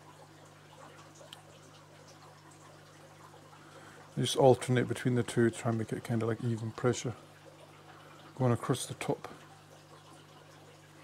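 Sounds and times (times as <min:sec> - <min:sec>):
water trickling: 0:00.0 - 0:11.0
small ticks: 0:00.2 - 0:04.2.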